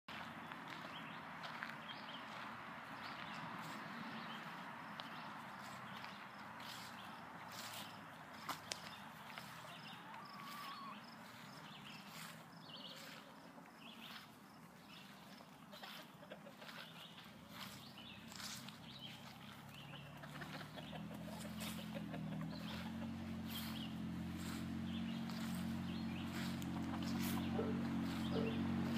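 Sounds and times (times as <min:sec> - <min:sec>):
footsteps through grass: 0:00.1 - 0:28.9.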